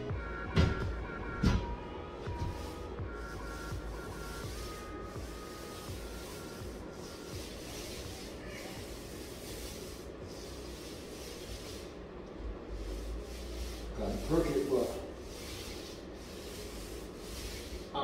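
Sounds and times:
paint roller rubbing on ceiling: 0:02.2 - 0:18.0.

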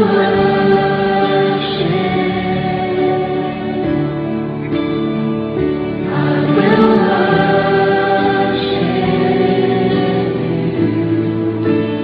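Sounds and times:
choir singing held notes: 0:00.0 - 0:04.2, 0:06.0 - 0:12.0
guitar-led music: 0:00.0 - 0:12.0.

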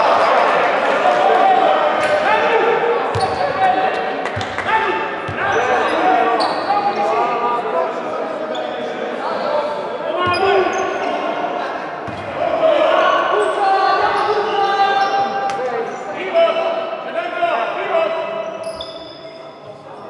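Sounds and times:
basketball bouncing on court: 0:03.1 - 0:03.5.

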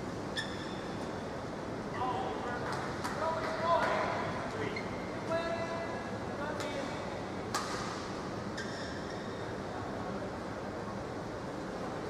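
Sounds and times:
shoes squeaking on court floor: 0:00.3 - 0:01.2, 0:08.5 - 0:09.5.

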